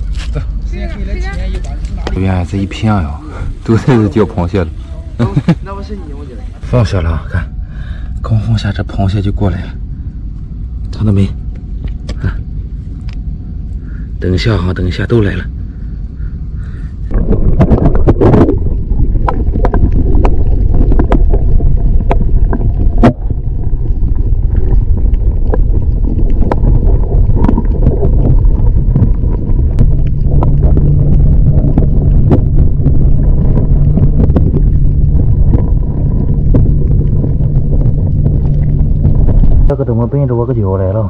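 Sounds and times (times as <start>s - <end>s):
rumble of moving water underwater: 0.0s - 41.0s
steady low hum: 0.0s - 41.0s.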